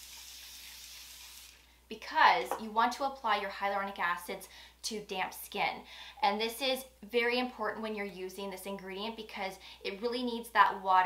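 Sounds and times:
aerosol spray hiss: 0:00.0 - 0:01.7.

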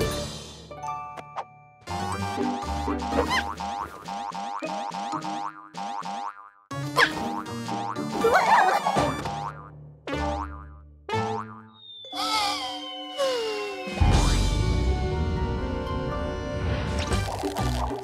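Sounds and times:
playful cartoon music: 0:00.0 - 0:18.0.

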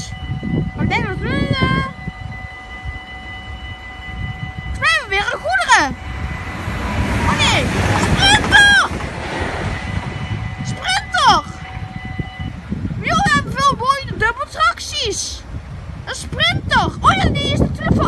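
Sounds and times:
level-crossing warning bell: 0:00.0 - 0:15.2
low rumble: 0:00.3 - 0:14.3
high-pitched voices calling out: 0:00.8 - 0:02.0, 0:04.7 - 0:06.0, 0:07.2 - 0:09.0.

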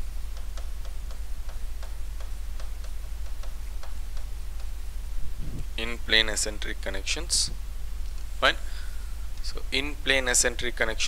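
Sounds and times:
low electrical hum: 0:00.0 - 0:11.0
stylus tapping on a screen: 0:00.3 - 0:04.8.

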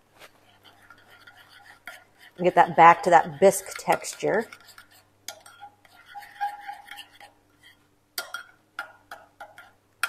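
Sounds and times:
spoon scraping in bowl: 0:00.4 - 0:08.5.

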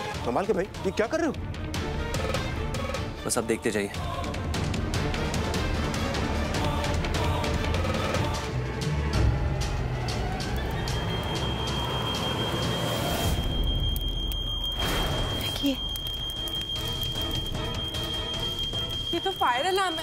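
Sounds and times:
dramatic background score: 0:00.0 - 0:20.0
fire alarm tone: 0:10.5 - 0:20.0.

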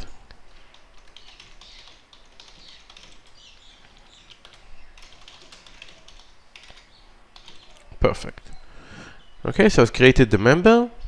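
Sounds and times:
typing on computer keyboard: 0:00.6 - 0:07.8.

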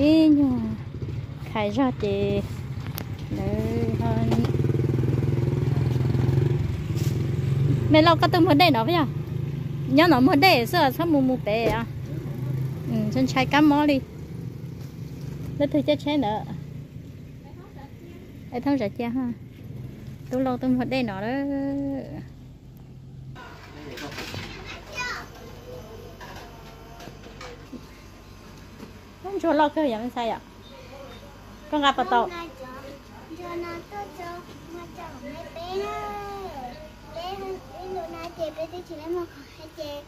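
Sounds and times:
vehicle engine running: 0:00.0 - 0:24.0
children's voices: 0:24.4 - 0:25.7, 0:32.0 - 0:40.0.

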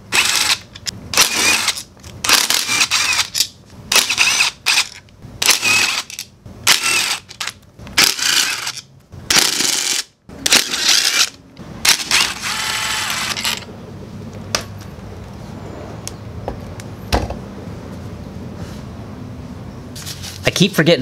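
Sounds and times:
cordless driver motor whining: 0:00.1 - 0:13.7.

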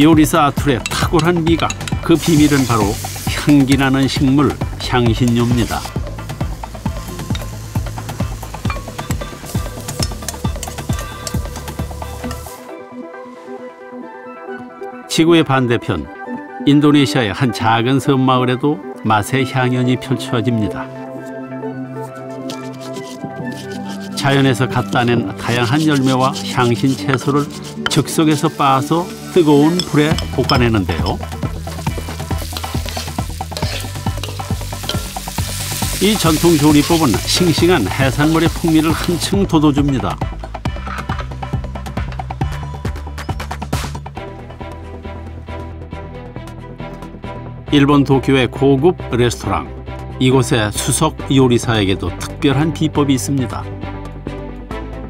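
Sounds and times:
background music with beat: 0:00.0 - 0:15.0, 0:25.0 - 0:47.7, 0:53.4 - 0:55.0
spoon scraping and clinking: 0:00.8 - 0:02.3, 0:29.1 - 0:30.8, 0:31.7 - 0:35.3
chickpeas sizzling in a pan: 0:02.2 - 0:03.6, 0:28.3 - 0:39.3
stirring scrapes in pan: 0:22.0 - 0:24.2, 0:24.8 - 0:30.6, 0:31.3 - 0:35.7.

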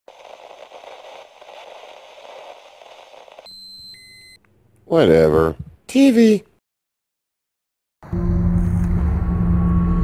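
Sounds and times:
television static hiss: 0:00.1 - 0:03.5.

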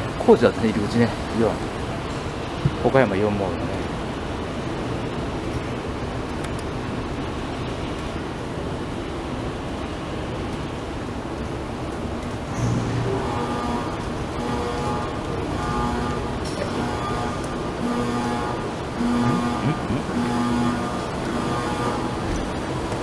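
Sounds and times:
underground passage background noise: 0:00.0 - 0:23.0.

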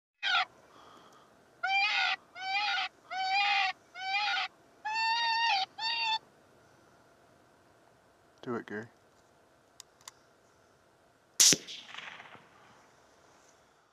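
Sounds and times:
shrill whining animal calls: 0:00.2 - 0:00.5, 0:01.6 - 0:06.2.

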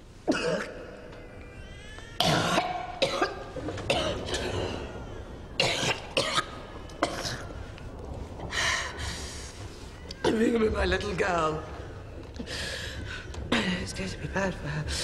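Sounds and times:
woman coughing: 0:00.3 - 0:00.8, 0:02.2 - 0:04.6.

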